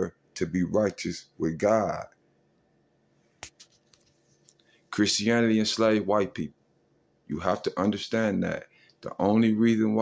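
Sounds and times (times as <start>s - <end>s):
man talking: 0.0s - 2.2s, 4.9s - 6.6s, 7.3s - 10.0s.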